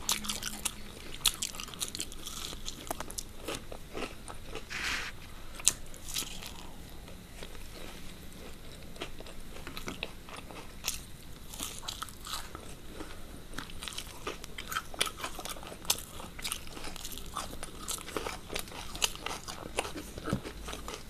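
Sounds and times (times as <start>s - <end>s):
crunching and chewing fried food: 0.0s - 21.0s.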